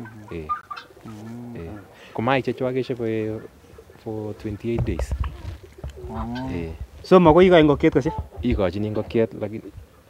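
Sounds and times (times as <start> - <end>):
doves cooing: 0.0 - 10.0.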